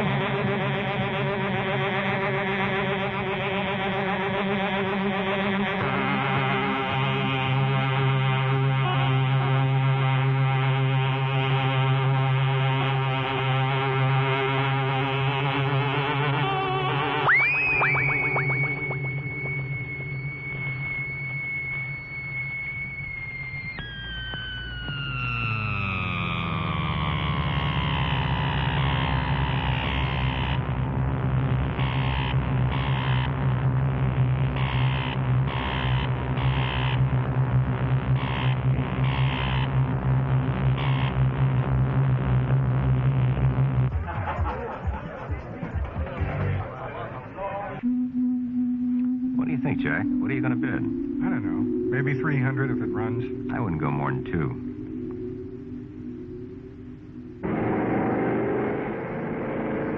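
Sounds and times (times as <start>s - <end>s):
steady low drone: 0.0s - 45.1s, 47.8s - 59.9s
high tone sweeping up: 5.5s - 43.9s, 47.8s - 59.9s
held synthesizer tones: 15.0s - 37.4s, 47.8s - 59.9s
short high pulses: 15.2s - 30.6s, 47.8s - 59.9s.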